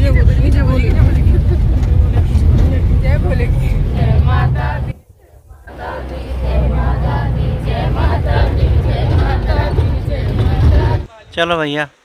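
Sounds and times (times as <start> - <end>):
engine and road rumble: 0.0 - 11.1
passengers talking: 0.0 - 11.5.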